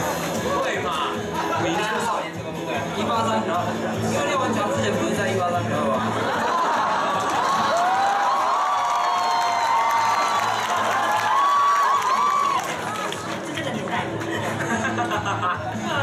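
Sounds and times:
audience screaming and cheering: 6.2 - 13.5.

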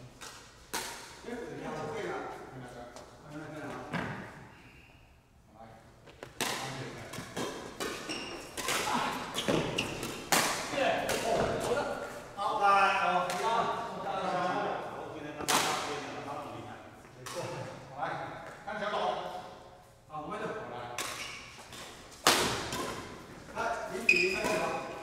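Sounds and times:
rackets hitting shuttlecock: 0.2 - 1.2, 6.1 - 11.8, 20.9 - 23.5, 24.2 - 25.0.

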